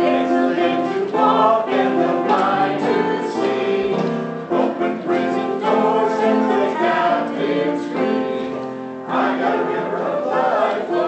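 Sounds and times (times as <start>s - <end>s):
congregation singing: 0.0s - 11.0s.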